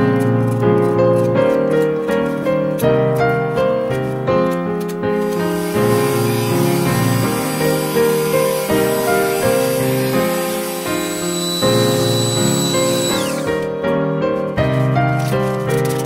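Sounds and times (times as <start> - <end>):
piano background music: 0.0 - 16.0
electric sander running: 5.3 - 13.7.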